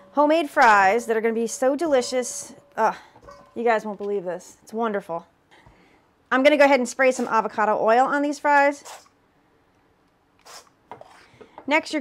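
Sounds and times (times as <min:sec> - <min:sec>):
short hiss: 0:10.4 - 0:10.7.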